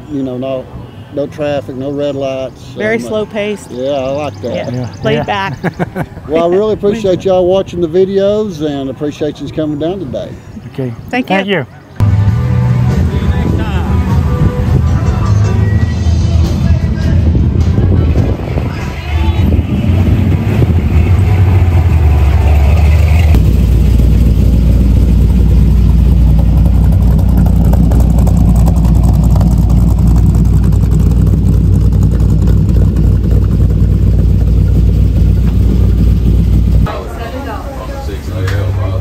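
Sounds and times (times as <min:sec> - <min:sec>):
truck engine idling: 0:11.8 - 0:39.0.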